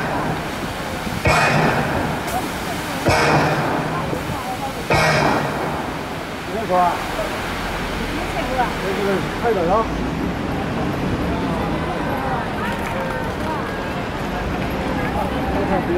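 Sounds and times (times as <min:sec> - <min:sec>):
fountain water jets splashing: 0:00.0 - 0:15.9
rush of falling water: 0:00.0 - 0:15.9.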